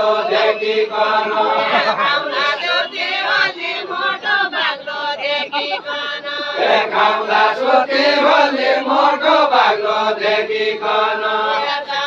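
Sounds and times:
men singing folk song unaccompanied: 0.0s - 12.0s.

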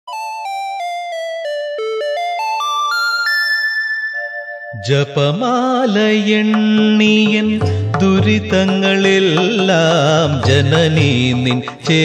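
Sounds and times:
keyboard synthesizer melody: 0.0s - 12.0s.

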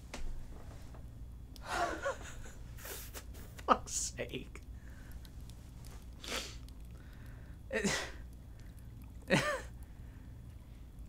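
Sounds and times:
man groaning: 7.7s - 8.2s.

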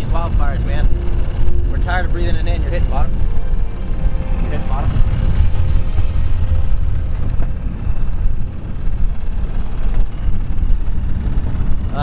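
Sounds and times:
outboard motor running: 0.0s - 12.0s
wind rumble on microphone: 0.0s - 12.0s.

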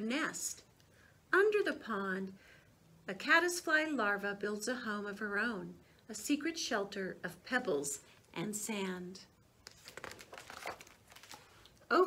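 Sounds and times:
book page turning: 9.6s - 11.8s.

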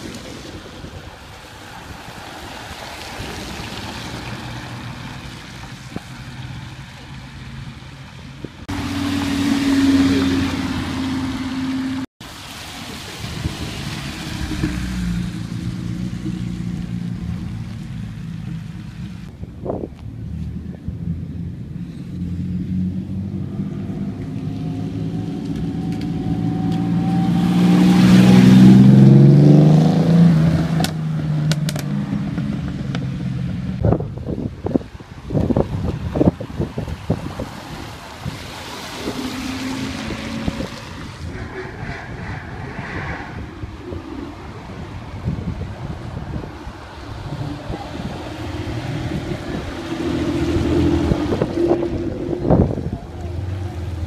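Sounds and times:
car engine passing loudly: 8.6s - 19.4s, 20.2s - 34.8s, 35.5s - 54.0s
car engine pulling away: 8.6s - 33.9s, 36.2s - 54.0s.

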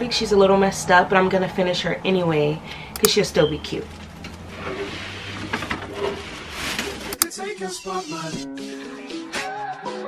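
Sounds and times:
rustling and handling noise: 3.6s - 7.2s.

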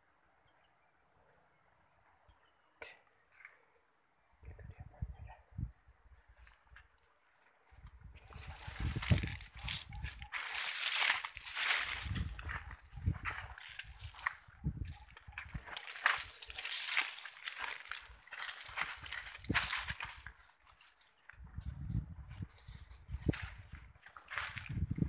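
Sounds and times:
leaves and brush rustling: 5.6s - 25.0s.

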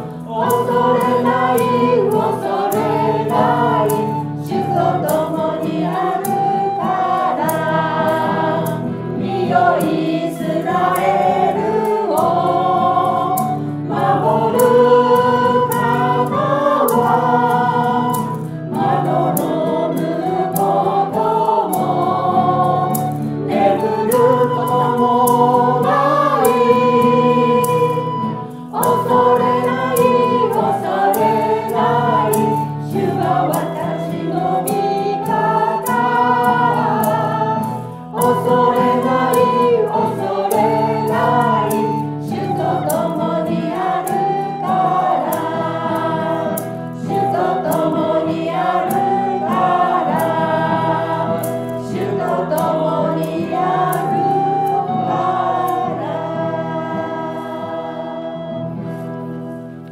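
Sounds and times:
choir singing a worship song: 0.0s - 59.9s
guitar: 0.0s - 59.9s
maracas shaking: 0.0s - 59.9s.

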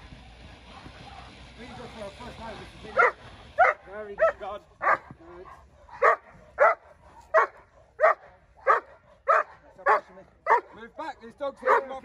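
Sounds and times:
dog barking: 0.7s - 1.9s, 3.0s - 10.8s, 11.6s - 12.0s.

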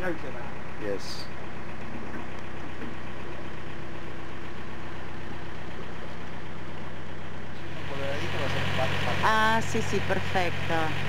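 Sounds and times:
boat diesel engine running: 0.0s - 11.0s
man talking: 7.6s - 9.2s.

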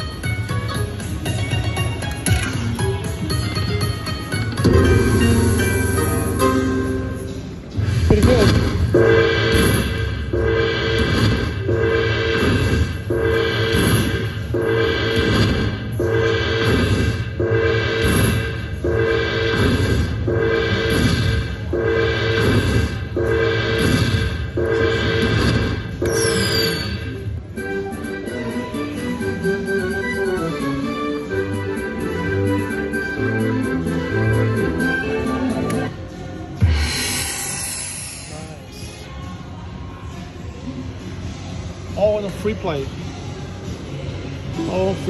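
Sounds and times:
slot machine jingle: 0.1s - 7.7s, 9.0s - 12.4s, 24.5s - 35.8s.

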